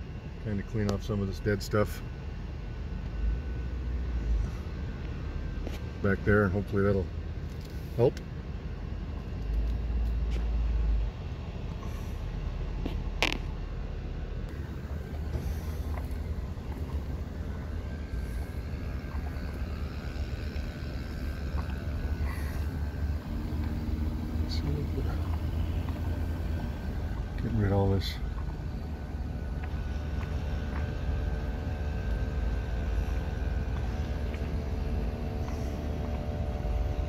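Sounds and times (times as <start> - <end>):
road and engine rumble: 0.0 - 37.0.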